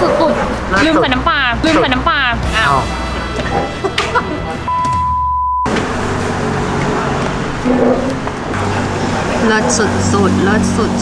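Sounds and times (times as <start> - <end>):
road traffic with low hum: 0.0 - 11.0
test-tone beep: 4.6 - 5.7.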